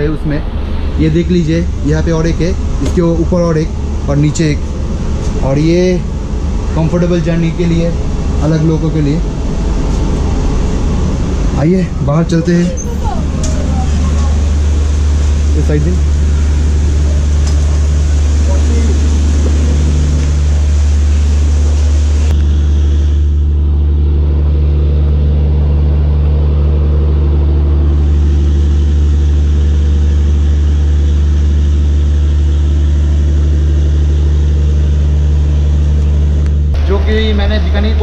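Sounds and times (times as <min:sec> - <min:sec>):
diesel train engine idling: 0:00.0 - 0:38.0.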